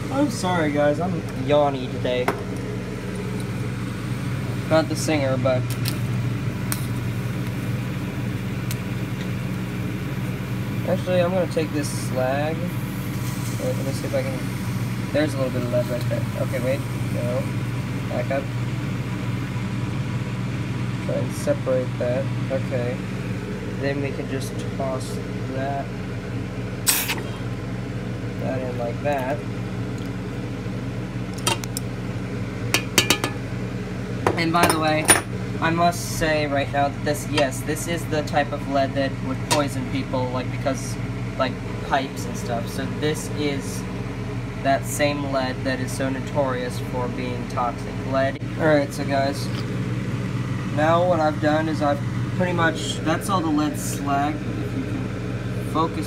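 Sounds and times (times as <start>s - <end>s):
low mechanical hum: 0.0s - 56.0s
metal clinking on steel pot: 32.8s - 33.4s.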